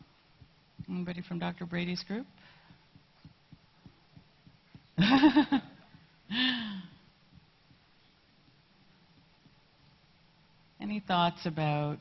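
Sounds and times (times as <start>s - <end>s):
faint low thumps: 0.0s - 10.8s.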